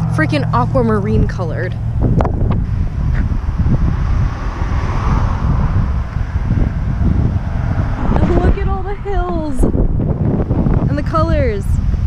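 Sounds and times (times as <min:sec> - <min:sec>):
car passing: 0:00.0 - 0:12.0
wind buffeting microphone: 0:00.0 - 0:12.0.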